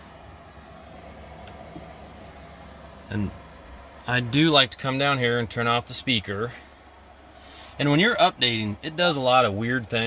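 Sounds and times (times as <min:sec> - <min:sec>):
equipment fan hum and hiss: 0:00.0 - 0:10.0.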